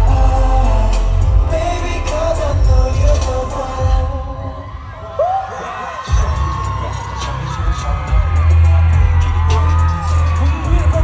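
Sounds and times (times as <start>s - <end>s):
heavy throbbing bass beat: 0.0s - 4.2s, 6.1s - 11.0s.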